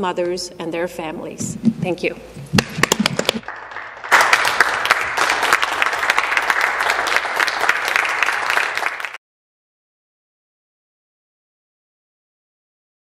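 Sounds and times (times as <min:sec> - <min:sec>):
crowd applauding: 0:02.6 - 0:09.2.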